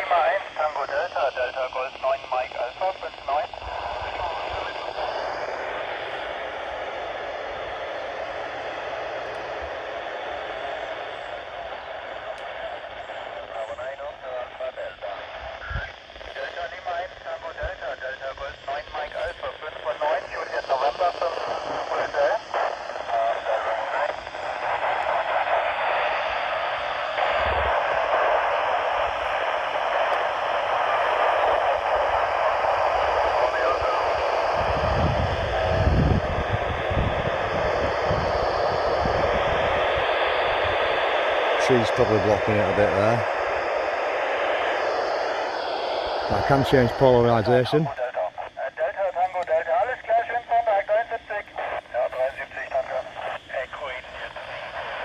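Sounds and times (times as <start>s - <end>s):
fragments of radio voices: 0.0s - 55.0s
radio hiss: 0.0s - 55.0s.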